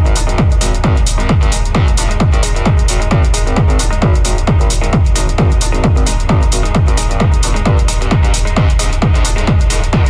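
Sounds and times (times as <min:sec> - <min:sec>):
hi-hats ticking: 0:00.0 - 0:10.0
sustained synth chords: 0:00.0 - 0:10.0
techno kick drum: 0:00.0 - 0:10.0.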